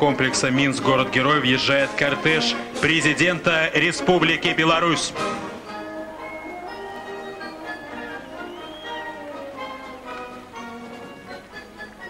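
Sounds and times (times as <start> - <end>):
military band playing: 0.0 - 12.0.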